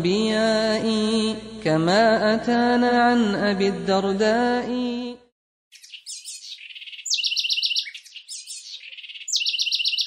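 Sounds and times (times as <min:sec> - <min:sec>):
songbird chirping and trilling: 0:05.7 - 0:10.0.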